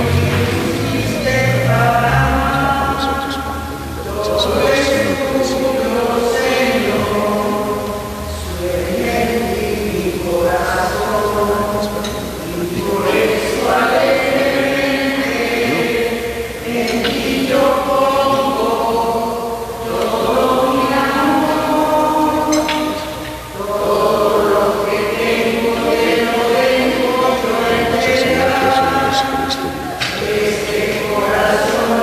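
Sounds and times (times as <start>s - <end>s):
voices singing a hymn: 0.0s - 32.0s.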